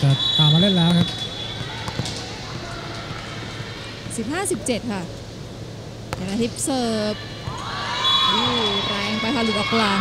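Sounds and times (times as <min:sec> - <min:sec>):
indoor arena background noise: 0:00.0 - 0:10.0.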